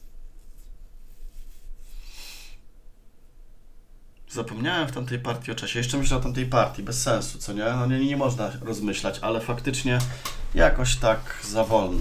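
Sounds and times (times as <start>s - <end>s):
soft rustling: 0.0s - 2.2s, 5.8s - 12.0s.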